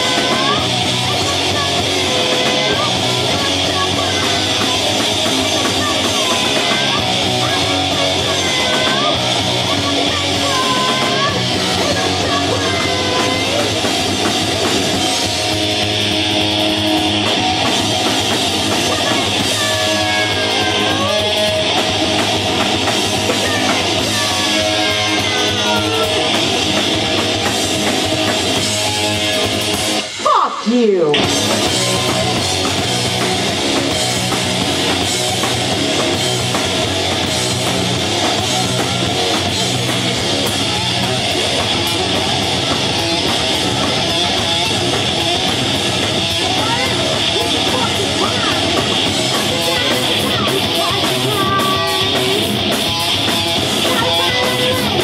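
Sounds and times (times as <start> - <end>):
drum kit: 0.0 - 55.0
electric bass: 0.0 - 55.0
electric guitar: 0.0 - 55.0.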